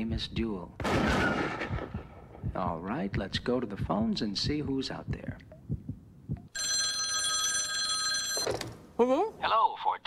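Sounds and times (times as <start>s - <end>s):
desk telephone ringing: 6.6s - 8.8s.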